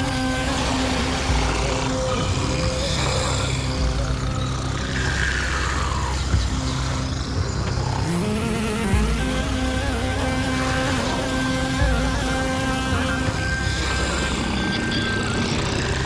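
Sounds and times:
bus engine drone: 0.0 - 16.0
passengers snoring: 0.0 - 16.0.

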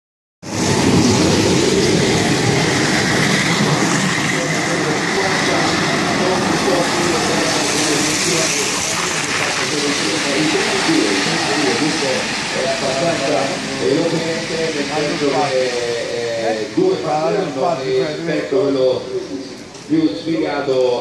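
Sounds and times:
cart wheels rumbling on wet asphalt: 0.5 - 15.3
indistinct voices: 0.5 - 21.0.

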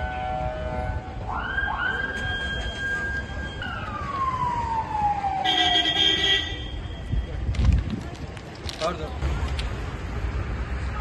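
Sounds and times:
emergency vehicle siren: 0.0 - 6.4
street traffic noise: 0.0 - 11.0.

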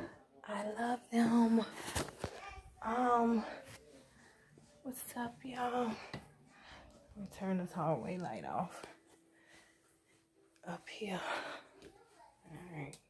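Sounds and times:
woman speaking: 0.5 - 1.7, 2.8 - 3.6, 4.8 - 6.1.

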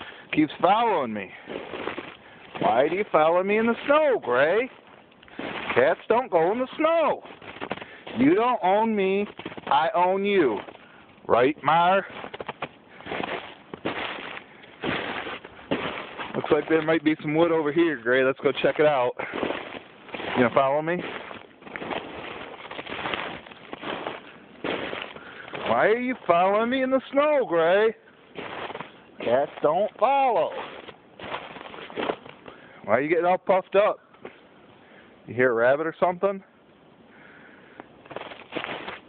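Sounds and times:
footsteps in snow: 0.0 - 32.7, 38.0 - 39.0
man speaking: 0.3 - 1.4, 2.6 - 4.8, 5.8 - 7.3, 8.1 - 10.7, 11.3 - 12.1, 16.3 - 19.3, 20.3 - 21.2, 25.6 - 28.0, 29.2 - 30.8, 32.8 - 34.0, 35.3 - 36.5.

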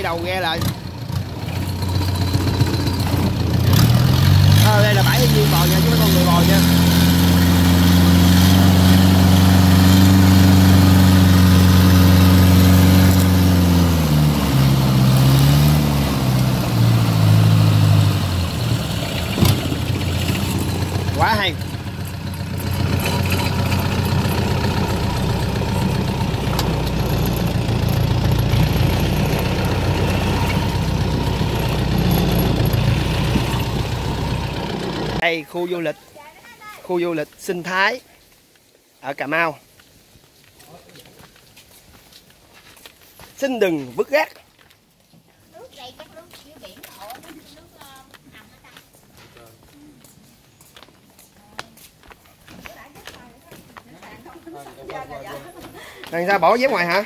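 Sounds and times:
boat engine running: 0.1 - 35.2.

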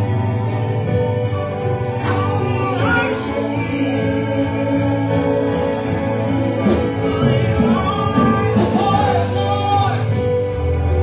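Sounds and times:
electric guitar: 0.0 - 11.0
keyboard: 0.0 - 11.0
voices singing together: 1.9 - 10.4.

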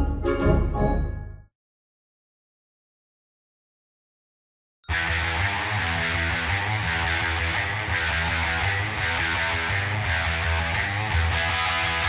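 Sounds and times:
instrumental rock music with guitar: 4.9 - 12.0.

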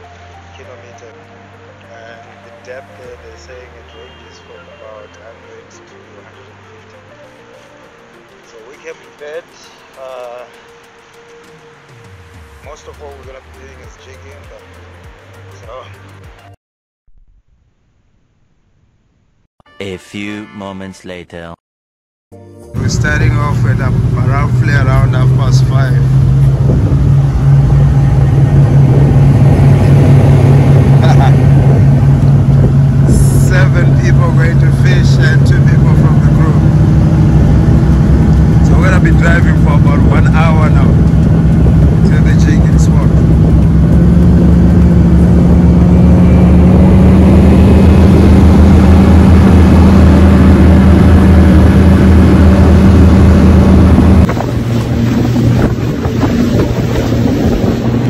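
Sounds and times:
motorboat engine running: 22.8 - 58.0
wind buffeting microphone: 23.0 - 58.0.

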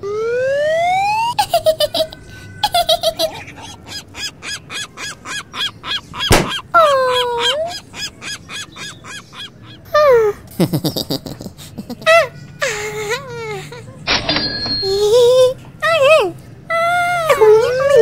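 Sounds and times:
cartoon honking: 0.8 - 10.0
chirping bird calls: 0.8 - 11.0, 14.0 - 15.6.

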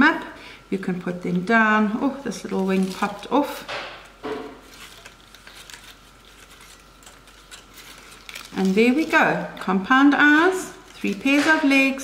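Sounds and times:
paper rustling: 2.0 - 3.7, 4.5 - 12.0.

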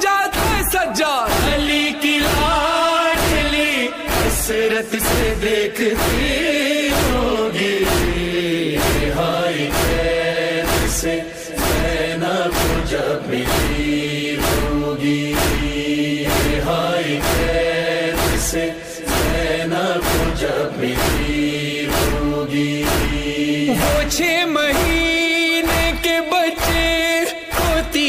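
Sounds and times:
man reciting a lament: 0.0 - 28.0
steady beat: 0.1 - 28.0.

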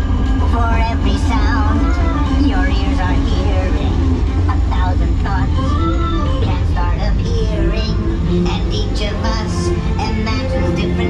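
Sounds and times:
music with held notes: 0.0 - 11.0
steady low rumble: 0.0 - 11.0.

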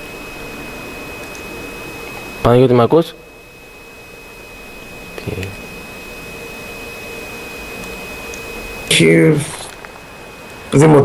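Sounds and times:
radio line noise hiss: 0.0 - 11.0.

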